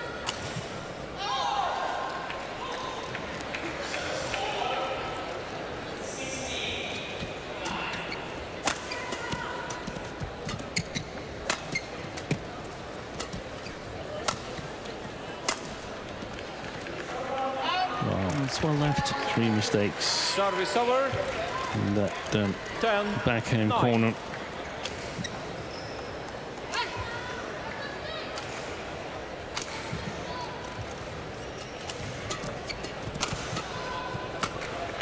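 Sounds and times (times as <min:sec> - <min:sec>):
murmur of voices: 0:00.0 - 0:35.0.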